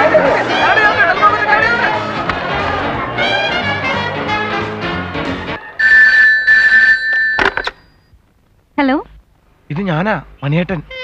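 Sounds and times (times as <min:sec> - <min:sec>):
telephone ringing: 0:05.6 - 0:08.2
receiver clatter: 0:06.0 - 0:08.6.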